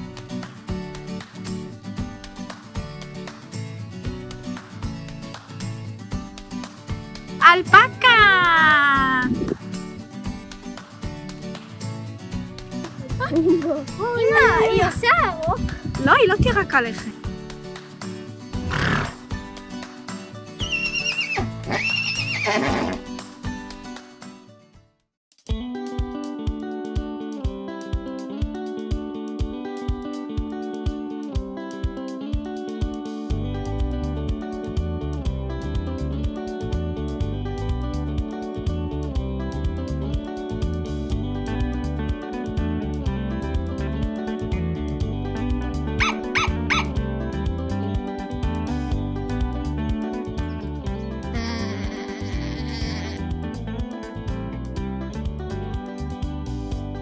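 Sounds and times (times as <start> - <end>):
background music: 0.0 - 24.7, 25.5 - 57.0
animal yelping: 18.6 - 19.2, 20.6 - 23.1, 46.0 - 47.0, 51.4 - 53.3
horse whinnying: 18.6 - 19.2, 20.6 - 23.1, 46.0 - 47.0, 51.4 - 53.3.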